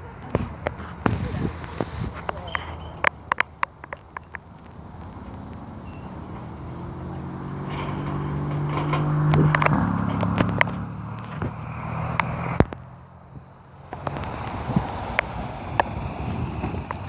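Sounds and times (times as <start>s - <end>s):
biplane engine passing: 0.0s - 17.0s
sharp clicks: 0.6s - 6.8s.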